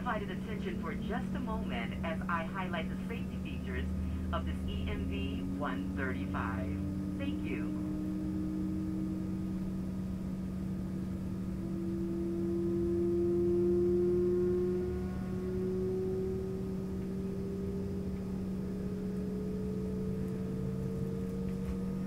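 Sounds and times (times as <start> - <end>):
low engine hum: 0.0 - 22.0
turbofan engine whine rising: 0.0 - 22.0.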